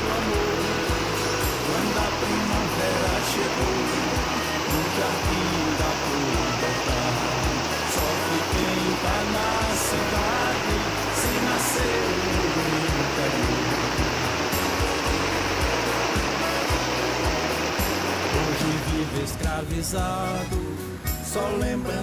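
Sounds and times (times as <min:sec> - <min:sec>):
water rushing: 0:00.0 - 0:20.0
country music: 0:00.0 - 0:22.0.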